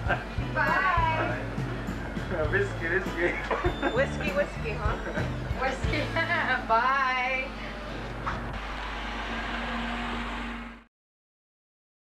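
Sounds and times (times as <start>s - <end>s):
car engine and road noise: 8.0s - 10.9s.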